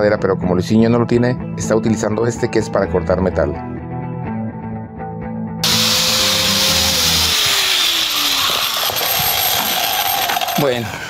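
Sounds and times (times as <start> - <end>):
background music: 0.0 - 7.5
angle grinder cutting wood: 5.6 - 11.0.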